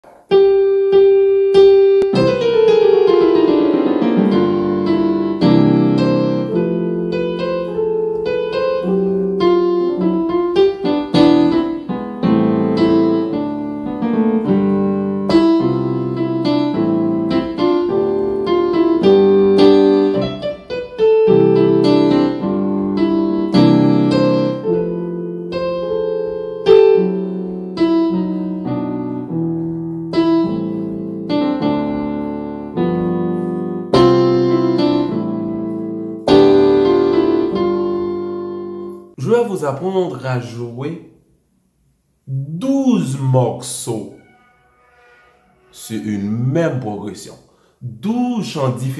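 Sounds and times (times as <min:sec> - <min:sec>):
piano gospel chords: 0:00.0 - 0:41.0.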